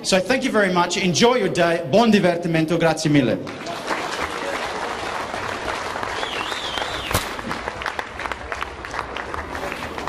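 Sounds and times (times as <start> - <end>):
crowd applauding: 3.4 - 10.0.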